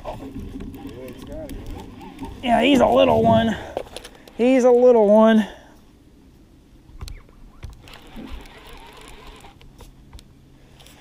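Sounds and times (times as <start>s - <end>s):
low rumble: 2.8s - 3.8s.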